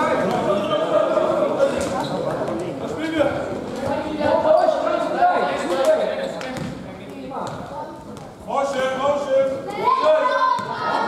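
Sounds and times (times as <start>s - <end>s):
basketball bouncing on floor: 6.6s - 6.8s.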